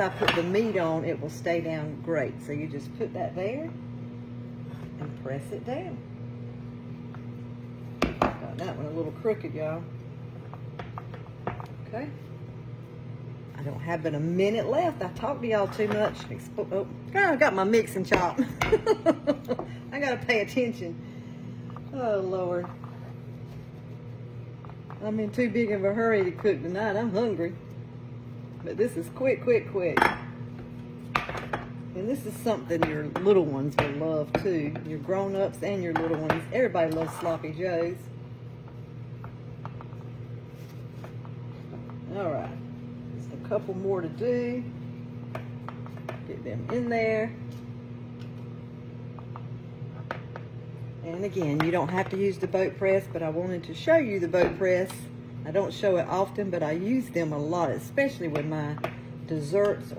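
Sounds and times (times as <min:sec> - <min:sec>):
microwave oven humming: 0:00.0 - 0:59.9.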